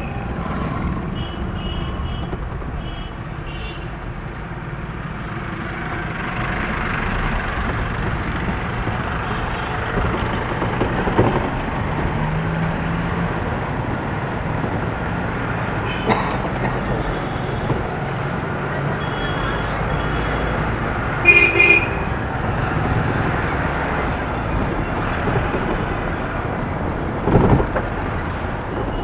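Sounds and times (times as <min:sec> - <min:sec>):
vehicle engine and road noise: 0:00.0 - 0:29.0.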